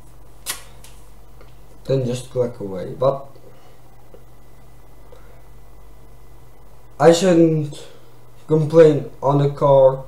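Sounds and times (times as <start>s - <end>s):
steady low hum: 0.0s - 10.0s
sharp click: 0.4s - 1.0s.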